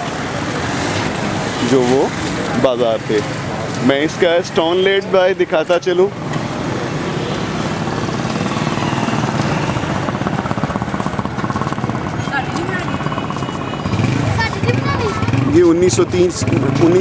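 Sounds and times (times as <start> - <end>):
motorcycle engines: 0.0 - 17.0
passers-by talking: 0.0 - 17.0
street traffic: 0.0 - 17.0.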